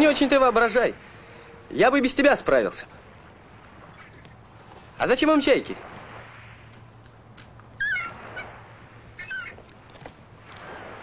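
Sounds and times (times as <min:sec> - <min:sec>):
gull calls: 0:07.7 - 0:09.7.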